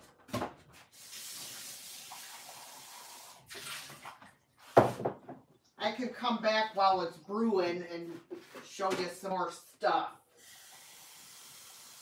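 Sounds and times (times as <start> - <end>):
water running from a tap: 0.9 - 4.1, 10.4 - 12.0.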